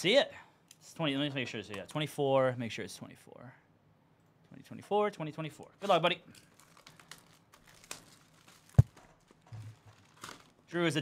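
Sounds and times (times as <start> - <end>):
cardboard rustling: 6.6 - 10.6.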